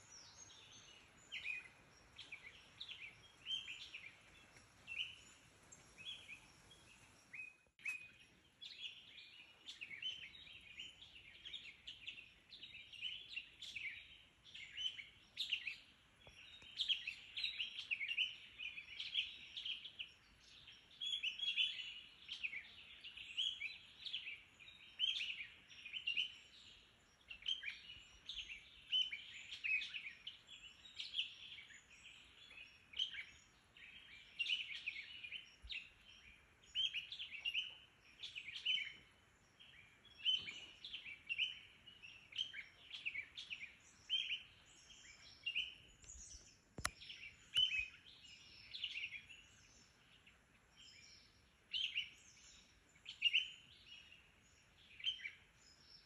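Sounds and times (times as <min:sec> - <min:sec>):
birds chirping and singing: 0:00.0 - 0:56.0.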